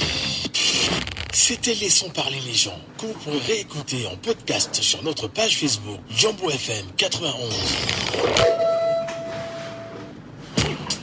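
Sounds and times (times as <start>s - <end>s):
steady electronic tone: 8.2s - 10.1s.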